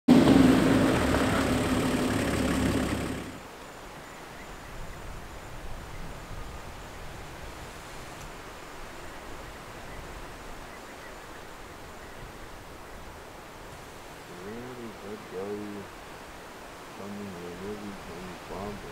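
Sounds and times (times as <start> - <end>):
vehicle engine running: 0.1 - 3.4.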